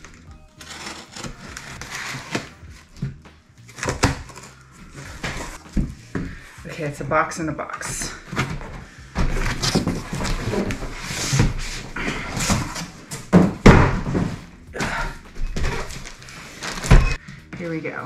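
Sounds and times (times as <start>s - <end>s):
cardboard rustling and scraping: 0.0s - 6.4s, 8.2s - 14.6s, 15.3s - 17.2s.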